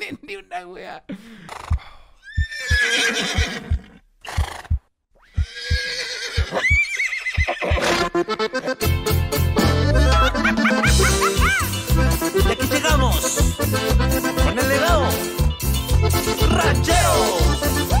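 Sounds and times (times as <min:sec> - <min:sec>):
horse whinnying: 0:01.5 - 0:08.2
accordion cumbia music: 0:07.7 - 0:18.0.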